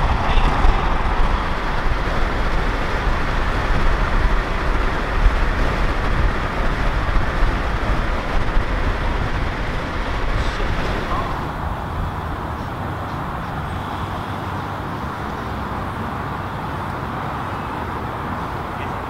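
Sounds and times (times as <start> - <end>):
car road and wind noise: 0.0 - 19.0.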